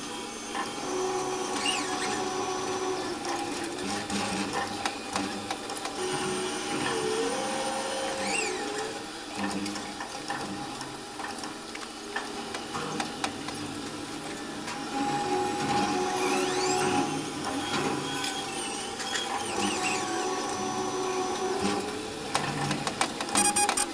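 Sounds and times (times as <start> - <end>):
crane motor whining: 0.0 - 9.2, 13.8 - 23.9
clicks: 21.6 - 23.9.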